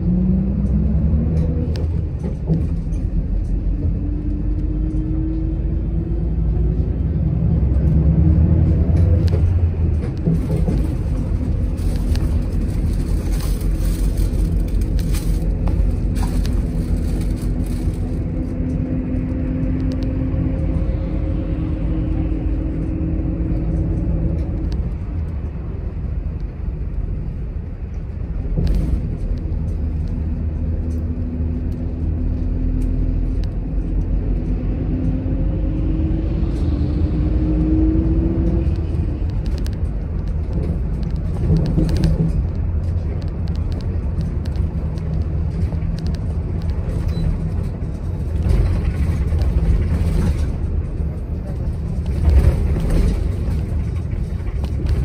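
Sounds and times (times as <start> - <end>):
bus engine and road rumble: 0.0 - 55.0.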